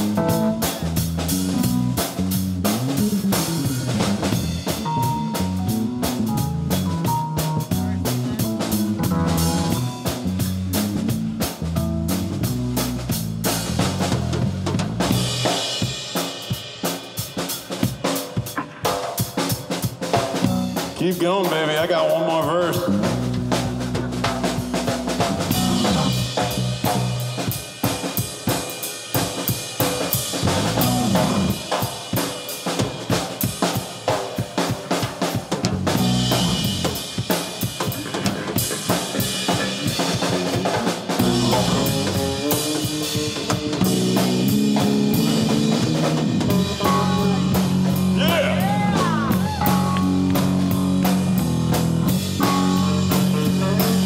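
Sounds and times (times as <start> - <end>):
live rock band: 0.0 - 54.0.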